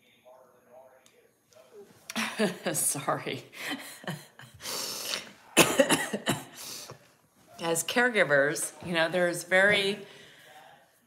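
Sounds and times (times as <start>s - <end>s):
woman drawing a breath: 4.6s - 5.3s
woman coughing: 5.6s - 6.8s.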